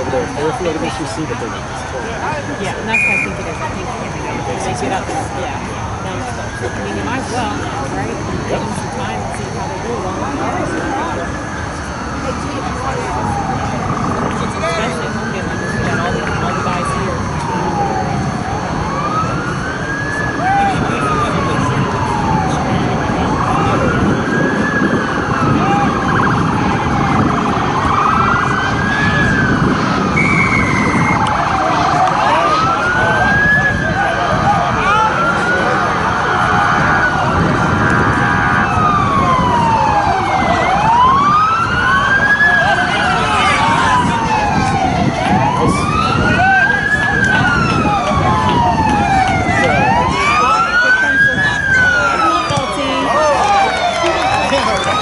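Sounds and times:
emergency siren wailing: 0.0 - 55.0
second wailing siren: 9.8 - 55.0.

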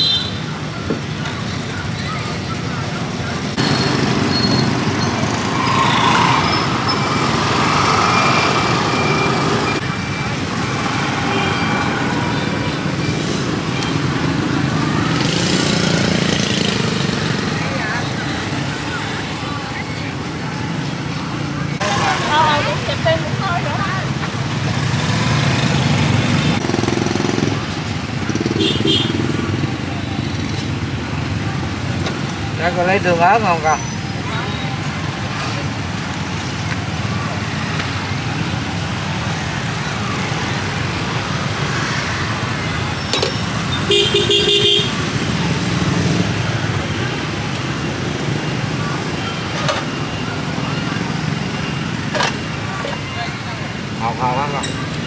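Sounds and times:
indistinct voices talking: 0.0 - 55.0
street traffic: 0.0 - 55.0.

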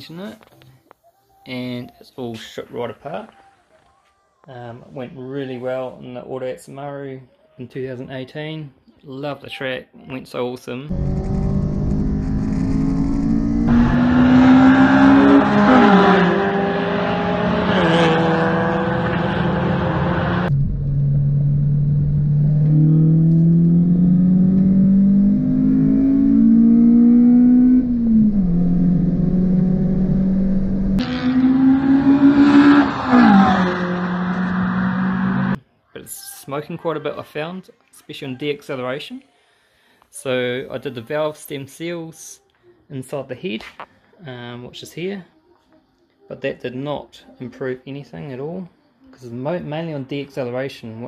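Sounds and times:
car engine revving hard: 10.9 - 20.5, 21.4 - 35.6.

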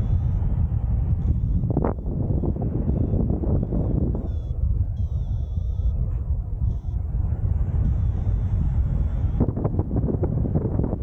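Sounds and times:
wind rushing over microphone: 0.0 - 11.0.

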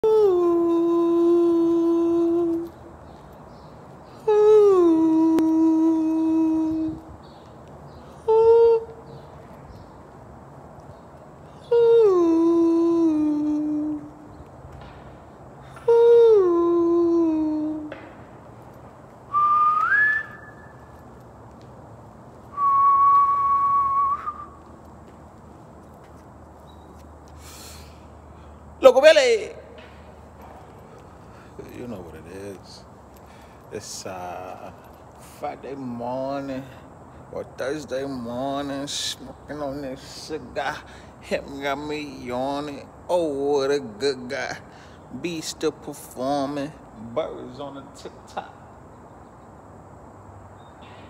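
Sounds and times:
person humming long notes: 0.0 - 2.8, 4.2 - 7.1, 8.2 - 9.0, 11.6 - 14.3, 15.8 - 17.9
whistled notes: 19.3 - 21.1, 22.5 - 24.7.

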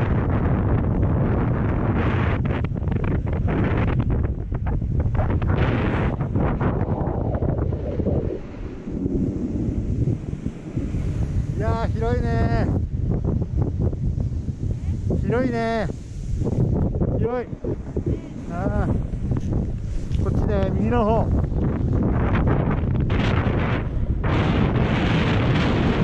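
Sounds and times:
wind rushing over microphone: 0.0 - 26.0.

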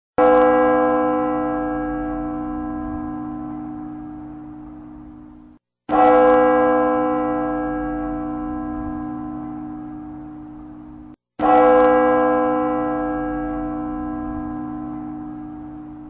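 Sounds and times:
large church bell tolling: 0.2 - 16.0.

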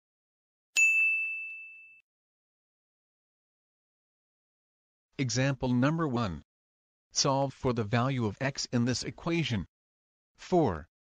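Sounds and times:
high bell-like ding: 0.8 - 2.0.

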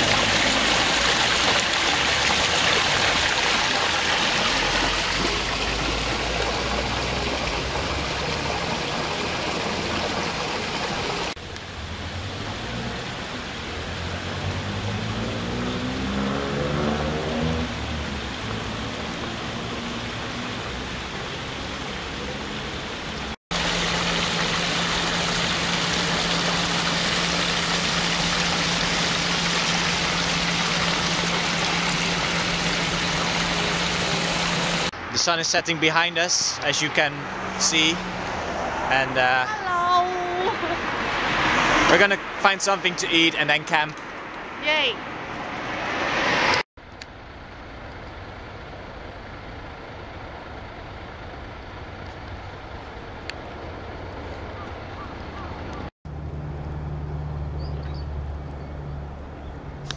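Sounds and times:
vehicle engine speeding up: 0.0 - 10.7, 11.7 - 35.0, 36.9 - 43.2, 44.3 - 46.7
water splashing from fountain: 0.0 - 58.9.

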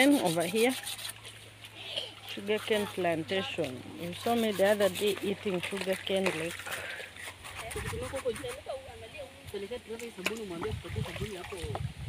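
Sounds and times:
low rumble of wind: 7.0 - 12.0.

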